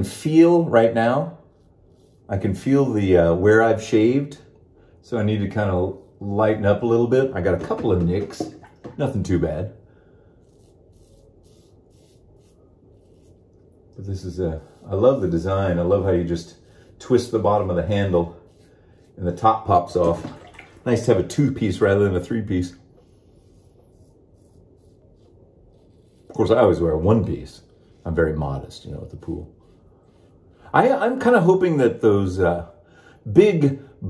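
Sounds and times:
razor scraping stubble: 0.8s - 4.2s, 10.3s - 20.1s, 21.2s - 31.6s.

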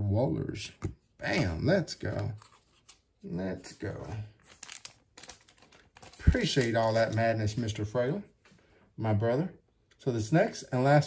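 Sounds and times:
plastic sleeves crinkling: 2.0s - 7.8s.

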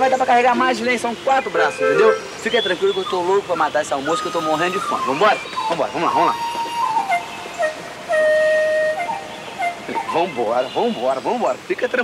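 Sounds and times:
soft flute-like melody: 0.0s - 11.0s.

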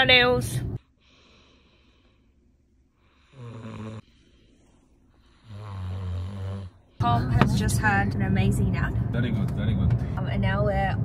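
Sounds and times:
man snoring: 3.1s - 4.3s, 5.2s - 6.9s.

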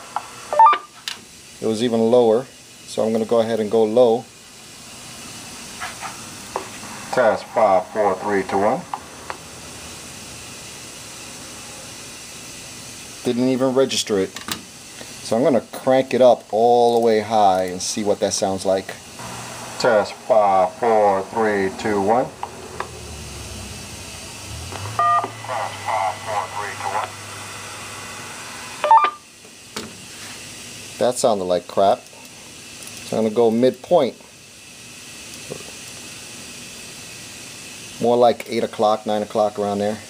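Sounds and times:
static hiss: 0.0s - 40.0s
short electronic tone: 24.8s - 25.5s.

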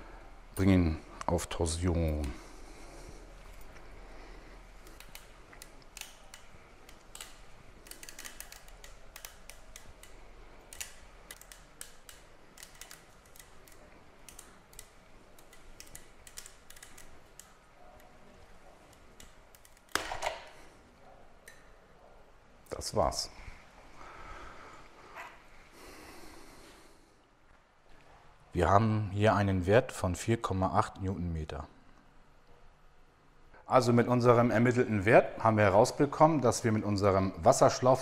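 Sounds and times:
wrench clicks and metal taps: 4.8s - 17.6s.

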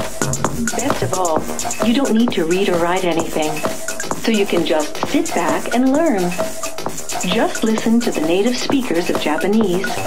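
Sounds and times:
clattering electronic percussion: 0.0s - 10.0s.

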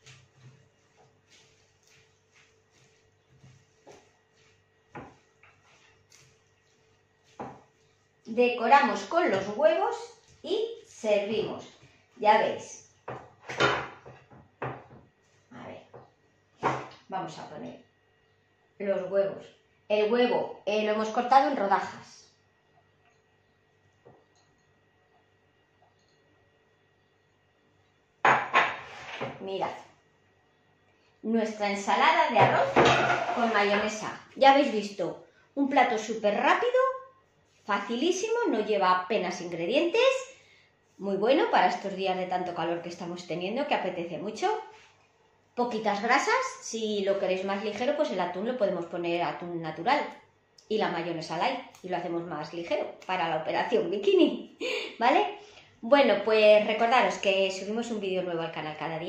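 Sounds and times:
dishes knocking and scraping: 28.3s - 29.4s, 32.4s - 33.9s
spatula scraping glass dish: 32.6s - 33.9s.

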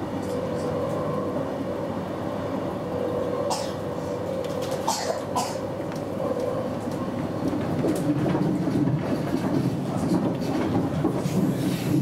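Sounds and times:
train wheels rumbling on rails: 0.0s - 12.0s.

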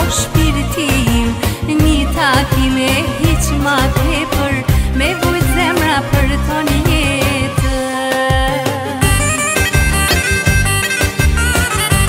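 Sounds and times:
steady drum beat: 0.0s - 12.0s
reedy wind instrument melody: 5.2s - 8.0s, 9.0s - 12.0s.

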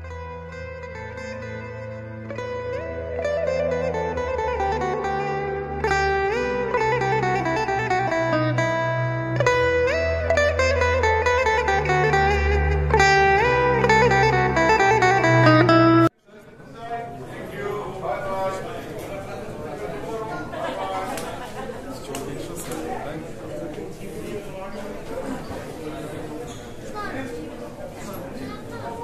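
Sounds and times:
melody with sliding notes: 0.0s - 16.1s
steady bass line: 0.0s - 16.1s.

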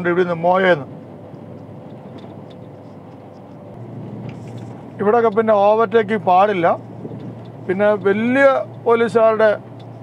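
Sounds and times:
road and engine noise inside vehicle: 0.0s - 10.0s.

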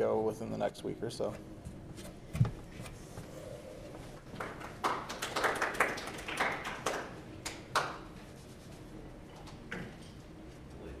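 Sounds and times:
audience applauding: 4.2s - 7.9s.

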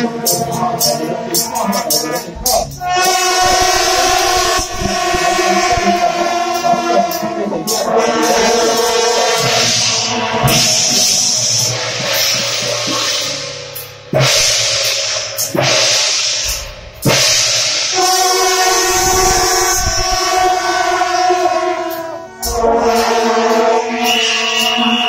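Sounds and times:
brass band playing long held notes: 0.0s - 13.4s, 17.8s - 25.0s.

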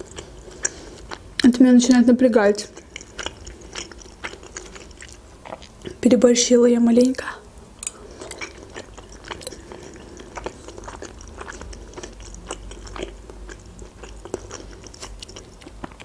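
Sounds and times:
person chewing food: 0.0s - 1.5s, 2.7s - 6.0s, 7.8s - 16.0s.

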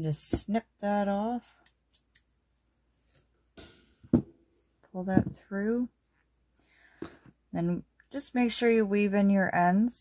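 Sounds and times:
sharp knock of object set down: 3.6s - 4.4s.

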